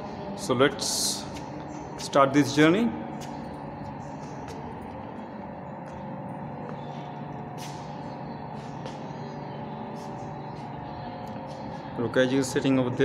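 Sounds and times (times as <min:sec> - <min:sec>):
mechanical room hum: 0:00.0 - 0:13.0.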